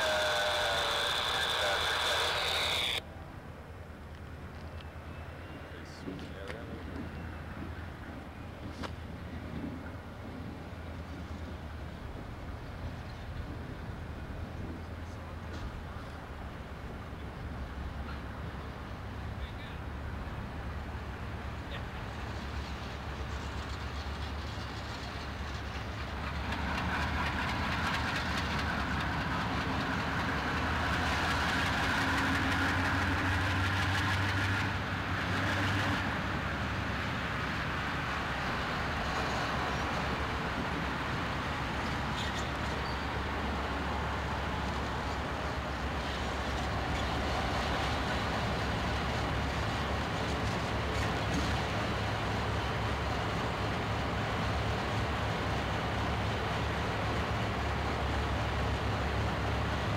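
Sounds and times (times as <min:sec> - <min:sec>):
locomotive engines idling: 0:00.0 - 0:03.2, 0:05.2 - 0:59.9.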